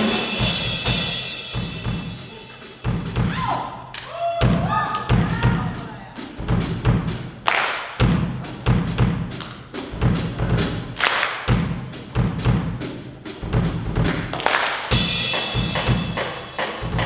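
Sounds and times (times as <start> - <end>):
cymbal and snare strikes: 0.0 - 4.1, 6.2 - 17.0
bass drum thuds: 4.4 - 7.4, 8.0 - 14.4.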